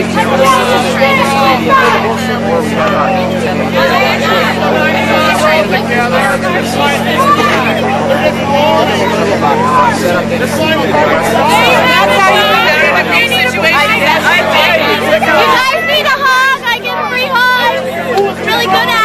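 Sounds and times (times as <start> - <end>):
crowd talking: 0.0 - 19.0
steady low hum: 0.0 - 19.0.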